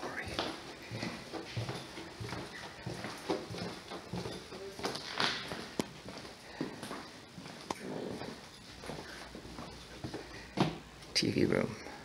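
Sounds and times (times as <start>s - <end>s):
footsteps on wooden floor: 0.0s - 10.9s.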